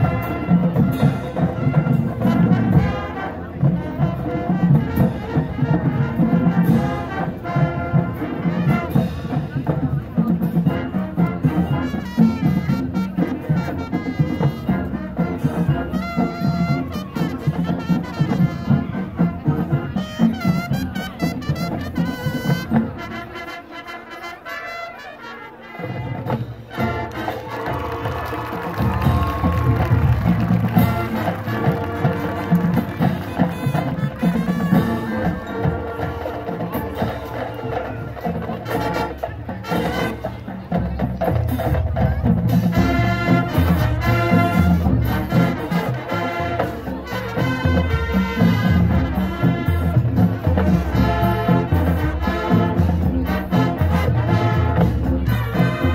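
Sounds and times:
marching band playing: 0:00.0 - 0:55.9.

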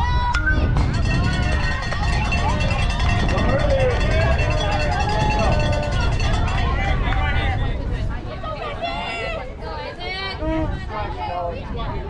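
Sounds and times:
steady low rumble: 0:00.0 - 0:08.3
young voices yelling and chanting: 0:00.0 - 0:12.0.

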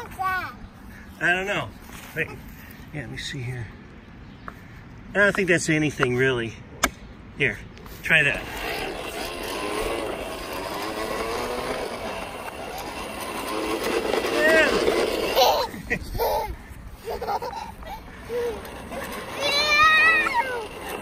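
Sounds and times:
toy lawnmower whirring: 0:08.0 - 0:21.0
toddler babbling and squealing: 0:15.2 - 0:21.0.

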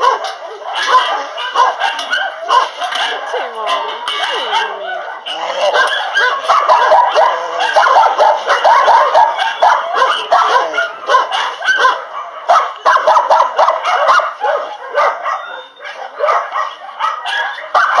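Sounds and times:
dogs barking and yipping: 0:00.0 - 0:18.0.

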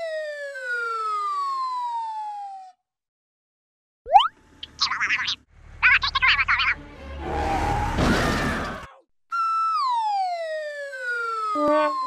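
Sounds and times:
cartoon falling whistle: 0:09.3 - 0:12.0.

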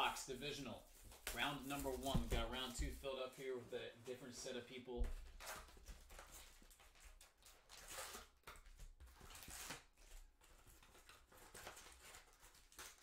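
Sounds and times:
packaging crinkling and rustling: 0:05.2 - 0:13.0.

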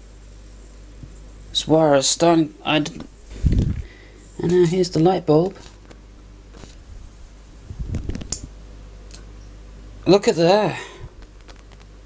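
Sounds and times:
tesla coil mains hum: 0:00.0 - 0:12.0
electric discharge crackles and clicks: 0:07.6 - 0:09.3, 0:11.1 - 0:12.0.

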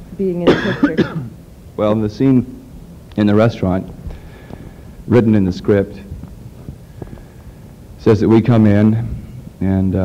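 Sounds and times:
faint recording hiss: 0:00.0 - 0:10.0
low steady hum: 0:00.0 - 0:10.0.

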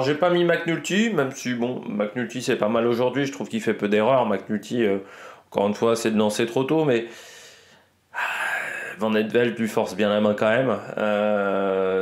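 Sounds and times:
man's breathy ahh: 0:05.0 - 0:05.5, 0:07.1 - 0:09.0
short breath: 0:05.0 - 0:05.5, 0:07.1 - 0:09.0.

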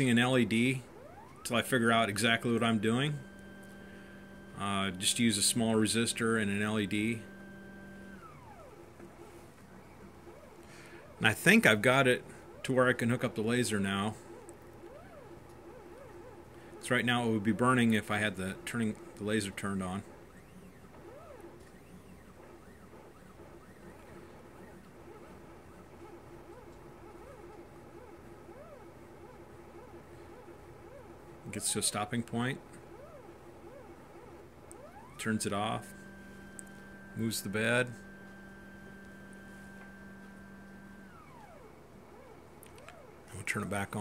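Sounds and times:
stepper motor whine: 0:00.0 - 0:43.8
steady hum: 0:00.0 - 0:44.0
stepper motor low tones: 0:00.0 - 0:44.0.

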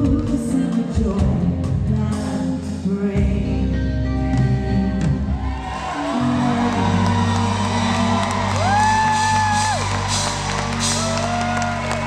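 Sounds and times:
audience cheering: 0:05.3 - 0:12.0
fan whooping: 0:05.5 - 0:12.0.

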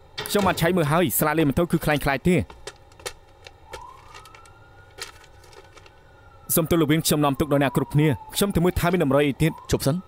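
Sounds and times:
distant siren wailing: 0:03.5 - 0:10.0.

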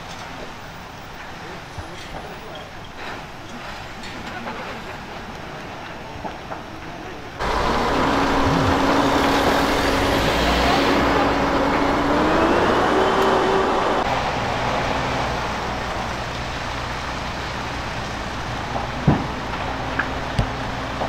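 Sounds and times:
dense rushing noise: 0:07.4 - 0:16.2
engine running: 0:07.4 - 0:21.0.

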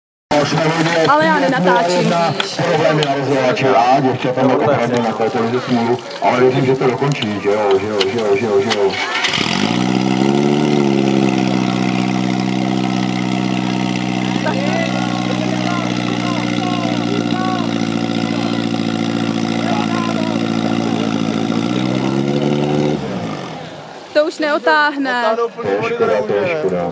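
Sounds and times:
pump engine revving: 0:00.3 - 0:24.9.

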